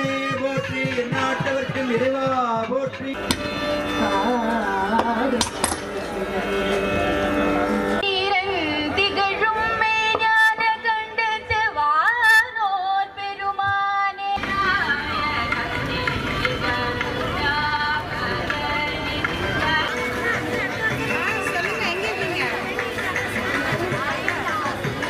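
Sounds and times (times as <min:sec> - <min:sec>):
woman singing into microphone: 0:03.8 - 0:06.9, 0:07.6 - 0:22.9
devotional singing: 0:03.9 - 0:06.8.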